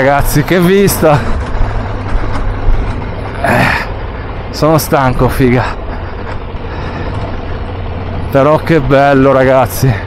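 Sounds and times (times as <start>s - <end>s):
motorcycle engine running: 0.0s - 10.0s
tyres on gravel track: 0.0s - 10.0s.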